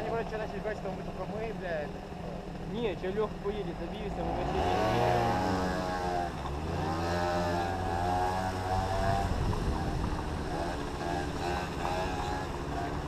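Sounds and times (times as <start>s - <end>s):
scooter engines running: 0.0s - 13.0s.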